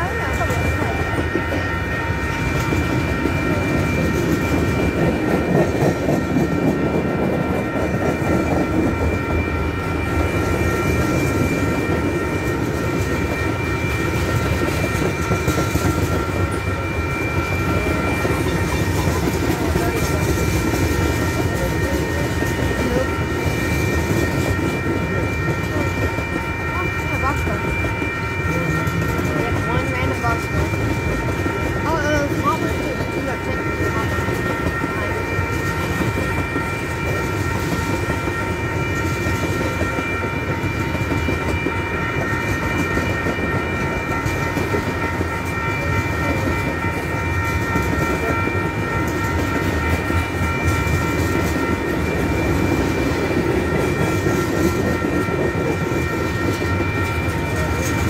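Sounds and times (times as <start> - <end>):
high-pitched ringing: 0.0 - 58.0
train wheels rumbling on rails: 0.0 - 58.0.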